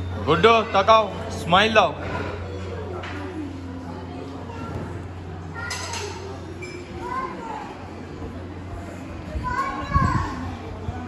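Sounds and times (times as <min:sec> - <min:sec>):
dining hall room noise: 0:00.0 - 0:11.0.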